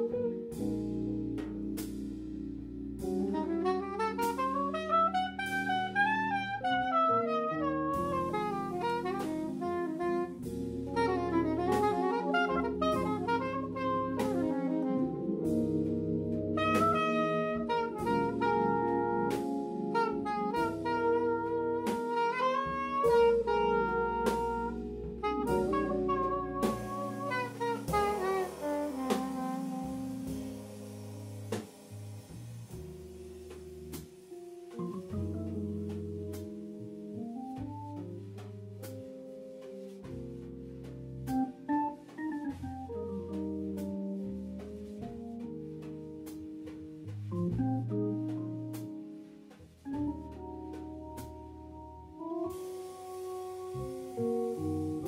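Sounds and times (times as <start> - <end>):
drum kit: 0.0 - 55.0
soprano saxophone melody: 3.0 - 31.5, 49.9 - 55.0.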